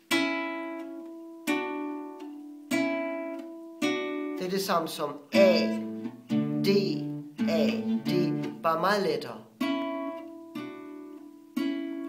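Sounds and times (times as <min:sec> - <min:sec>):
guitar chords strummed: 0:00.0 - 0:12.0.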